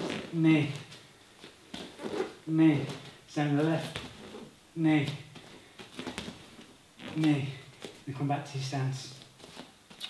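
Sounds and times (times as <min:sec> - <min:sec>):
bare feet on rubber mat: 0:00.0 - 0:08.2, 0:09.0 - 0:10.0.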